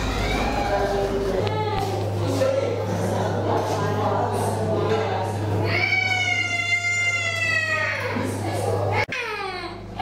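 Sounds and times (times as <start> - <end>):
child crying wail: 0.0 - 0.9.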